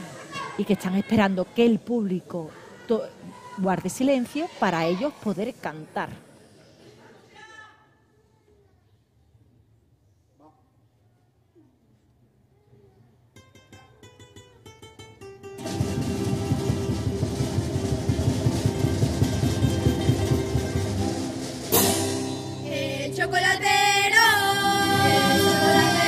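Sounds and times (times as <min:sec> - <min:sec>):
classical guitars strumming: 0:13.4 - 0:26.0
children's choir singing: 0:22.6 - 0:26.0.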